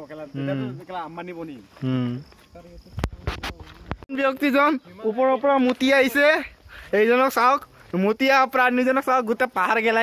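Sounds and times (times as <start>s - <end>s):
high insect trill: 0.0s - 10.0s
men talking: 0.0s - 10.0s.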